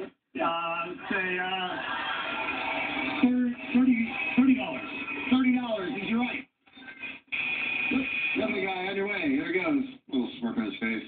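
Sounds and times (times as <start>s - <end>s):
television speech: 0.0s - 11.0s.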